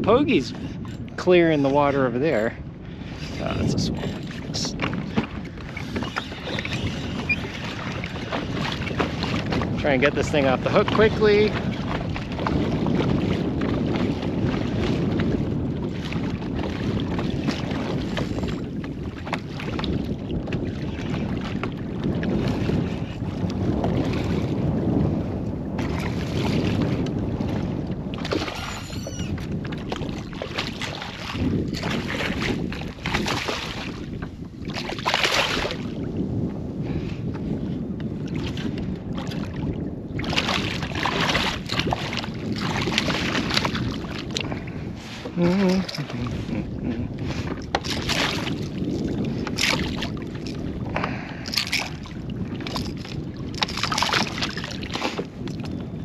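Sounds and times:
water slapping kayak hull: 0.0 - 56.0
wind on microphone: 0.0 - 56.0.

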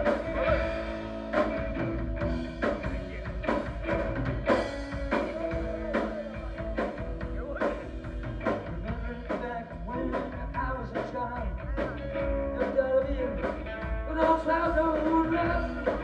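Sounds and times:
rock band playing live: 0.0 - 16.0.

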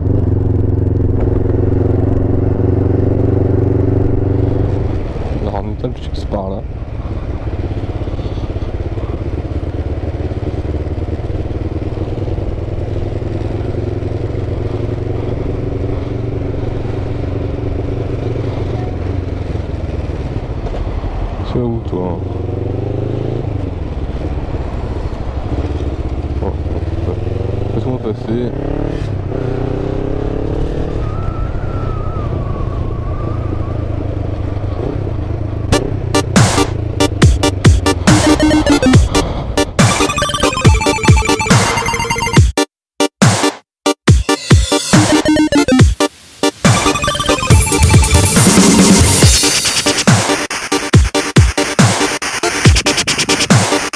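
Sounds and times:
motorcycle engine running at low revs: 0.0 - 21.4, 22.0 - 42.4
electronic music: 35.7 - 53.9.

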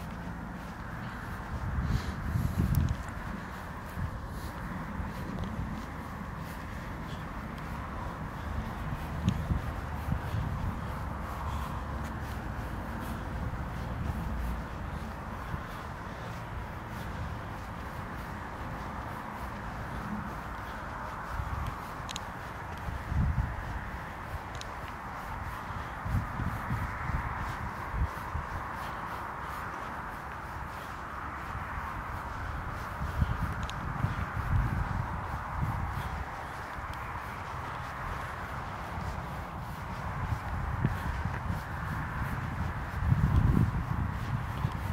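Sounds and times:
steady outdoor hiss: 0.0 - 44.9.

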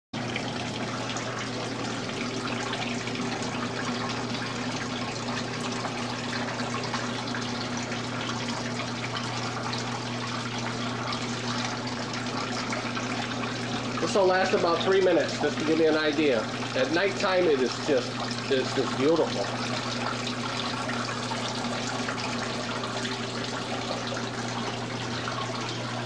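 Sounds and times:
water splashing and trickling: 0.2 - 26.0.

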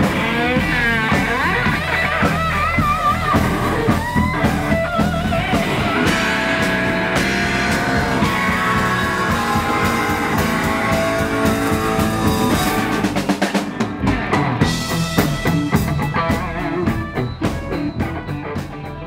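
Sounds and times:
bass guitar: 0.0 - 19.0
drum kit: 0.0 - 19.0
electric guitar: 0.0 - 19.0.

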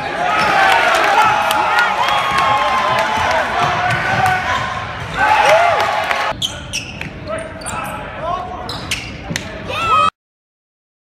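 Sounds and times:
voices echoing in a hall: 0.0 - 9.9.

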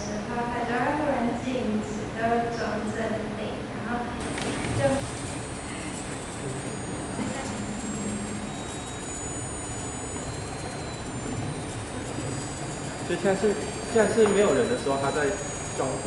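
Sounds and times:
noisy background hum: 0.0 - 16.0
thin high-pitched whines: 4.2 - 16.0.

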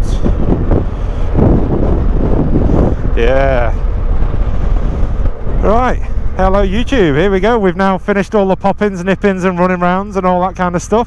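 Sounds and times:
motorcycle engine: 0.0 - 11.0
road noise: 0.0 - 11.0
wind buffeting microphone: 0.0 - 11.0.

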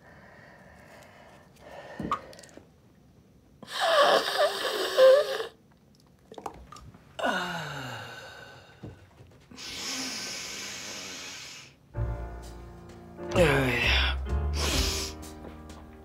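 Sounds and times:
long steady breath: 0.0 - 2.6, 7.2 - 11.9
woman sighing: 7.2 - 8.8.

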